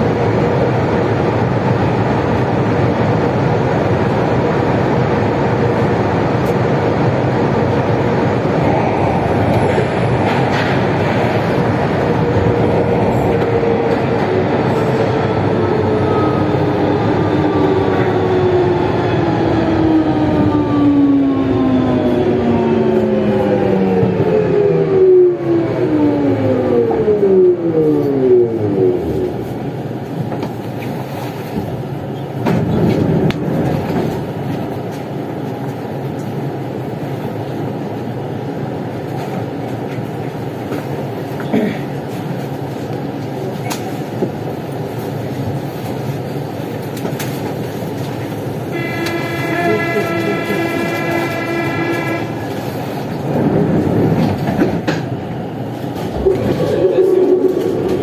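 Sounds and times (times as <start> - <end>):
steady rumble of standing train: 0.0 - 58.0
train traction drive whining: 46.8 - 58.0.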